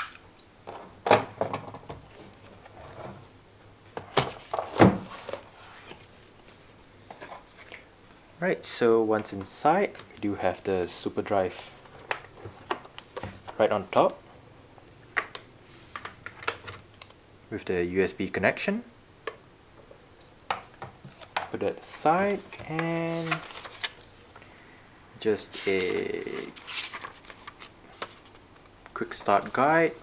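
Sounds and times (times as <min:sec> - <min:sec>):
paper rustling: 0:21.9 - 0:24.3, 0:25.4 - 0:30.0.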